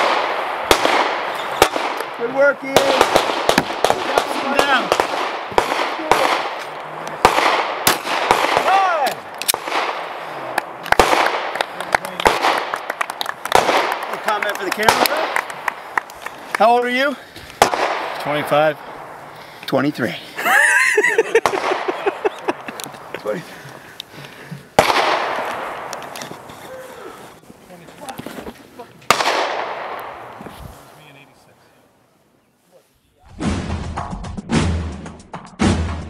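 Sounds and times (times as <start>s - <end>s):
sharp gunshots: 0.0s - 15.8s, 17.6s - 18.8s, 21.3s - 22.2s, 24.8s - 26.0s, 29.1s - 30.3s, 33.3s - 36.0s.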